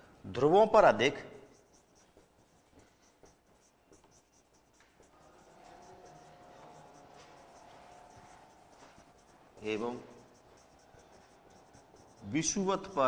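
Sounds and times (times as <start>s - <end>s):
marker writing on whiteboard: 0.4s - 13.0s.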